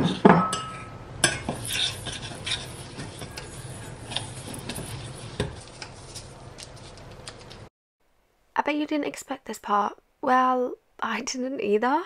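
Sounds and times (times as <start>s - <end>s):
metal spoon scraping saucepan: 0.0s - 6.0s.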